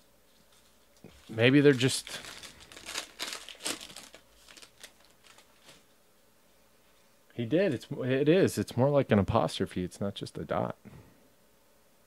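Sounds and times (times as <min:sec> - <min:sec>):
wrapper tearing and crinkling: 0:01.1 - 0:05.8.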